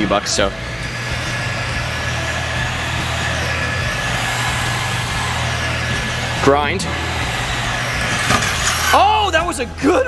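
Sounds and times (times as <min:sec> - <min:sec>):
electric rc car driving: 0:00.0 - 0:09.6.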